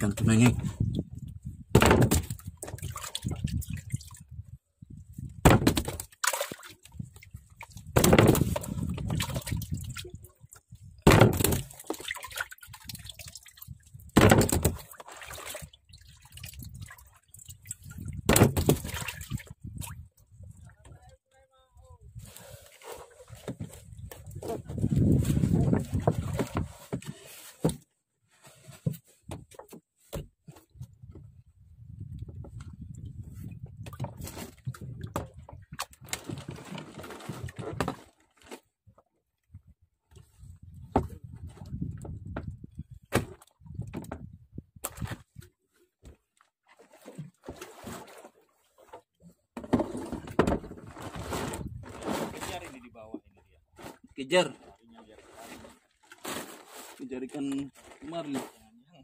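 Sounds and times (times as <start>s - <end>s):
water sloshing against boat hull: 0.0s - 21.3s, 22.1s - 31.4s, 32.0s - 59.0s.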